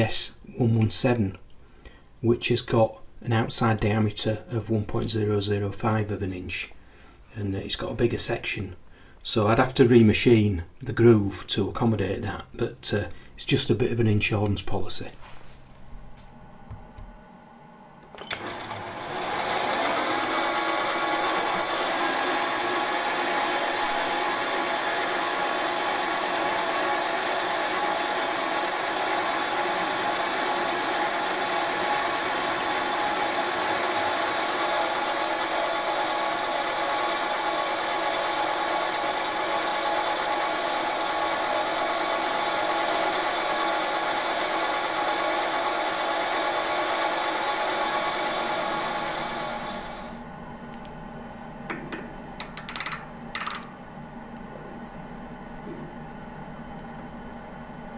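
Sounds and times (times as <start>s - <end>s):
metal lathe motor whine: 18.2s - 50.1s
lathe tool cutting metal: 18.4s - 50.0s.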